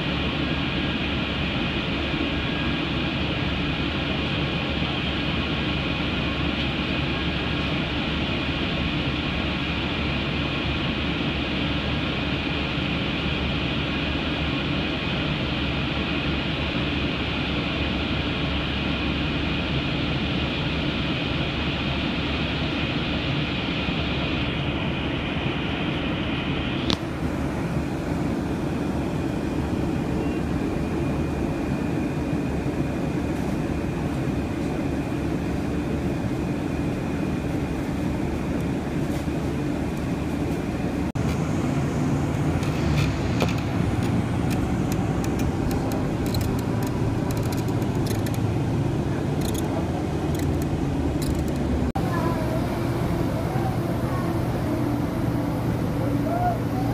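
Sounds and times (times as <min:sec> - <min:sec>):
vehicle interior rumble: 0:33.2 - 0:56.9.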